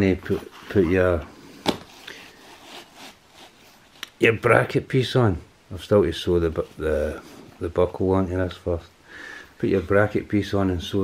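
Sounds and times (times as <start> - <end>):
fabric rustling and rubbing: 0.0 - 4.4.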